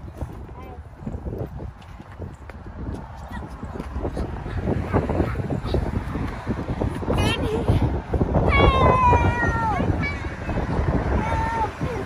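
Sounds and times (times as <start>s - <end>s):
wind on microphone: 0.0s - 12.0s
child crying out: 8.4s - 9.9s.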